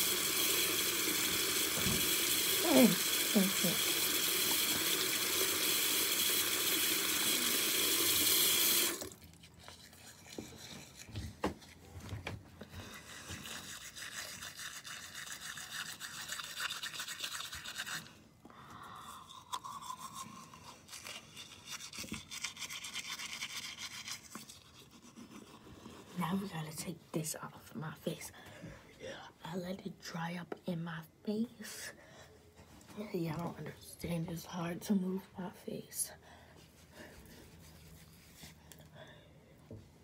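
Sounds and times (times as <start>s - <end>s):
toothbrush scrubbing teeth: 0.0s - 11.9s, 12.6s - 18.3s, 19.0s - 26.9s
tap running into sink: 1.3s - 2.5s.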